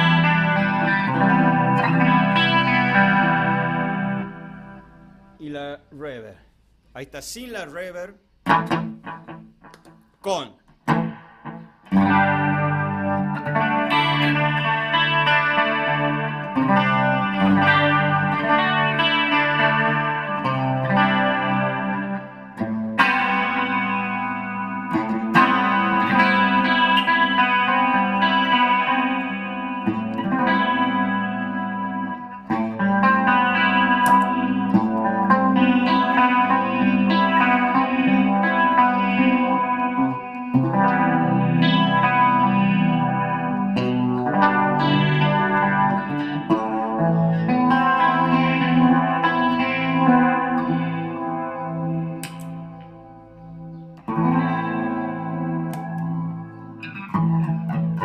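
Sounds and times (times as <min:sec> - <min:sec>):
electric guitar chords and notes: 0:00.0 - 0:06.2, 0:06.8 - 0:58.0.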